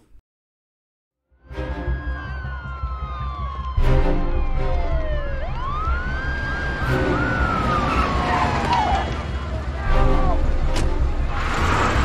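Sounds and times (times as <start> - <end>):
film score music: 1.2 - 8.9, 9.6 - 12.0
police sirens wailing: 1.4 - 12.0.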